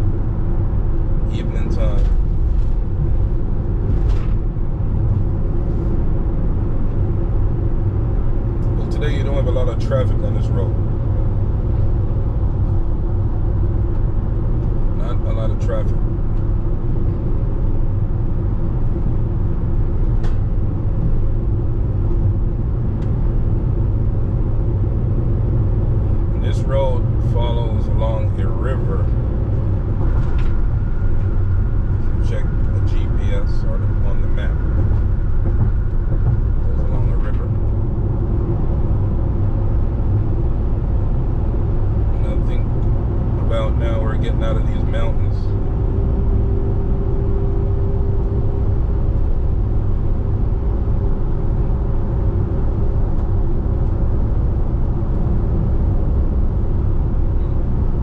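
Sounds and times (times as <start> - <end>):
car cruising on highway: 0.0 - 58.0.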